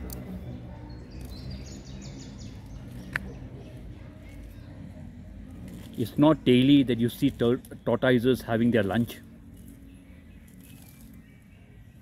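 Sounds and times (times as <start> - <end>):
low outdoor background noise: 0.0 - 12.0
small birds chirping: 0.0 - 12.0.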